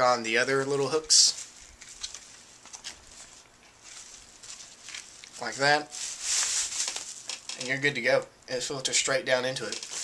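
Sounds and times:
plastic bladder rustling: 0.6s - 7.8s, 9.6s - 10.0s.

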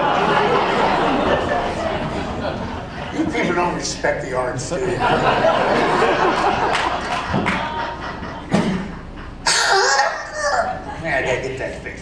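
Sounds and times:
audience laughing: 0.0s - 11.2s
person coughing: 9.5s - 10.6s.

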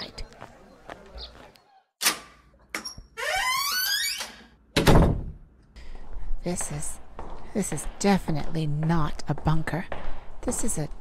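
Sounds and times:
door hinges creaking: 2.7s - 5.3s
door slamming: 3.2s - 5.4s.

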